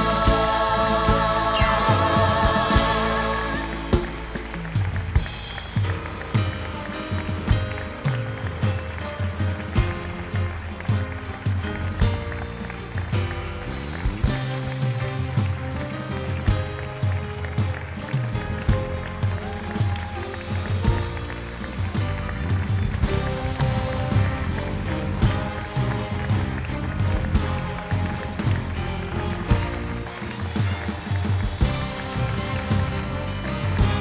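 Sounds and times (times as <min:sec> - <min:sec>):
choir singing gospel: 0:00.0 - 0:04.4
instrumental music with drum beat: 0:00.0 - 0:34.0.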